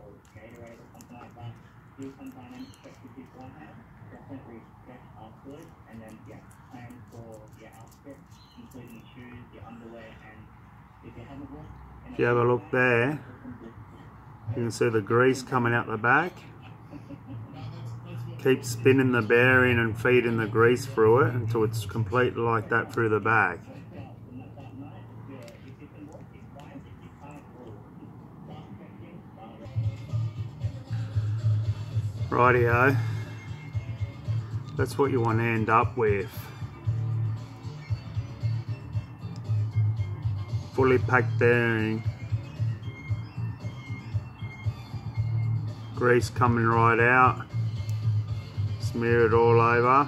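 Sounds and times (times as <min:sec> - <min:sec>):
faint background voices: 0:00.0 - 0:14.9, 0:20.4 - 0:31.3
sticky clicks and squelches of grease: 0:00.2 - 0:03.5, 0:05.5 - 0:09.0.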